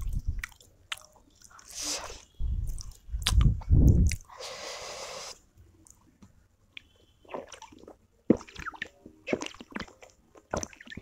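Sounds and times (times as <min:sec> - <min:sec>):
close-miked wet chewing: 0:00.0 - 0:04.4, 0:07.2 - 0:11.0.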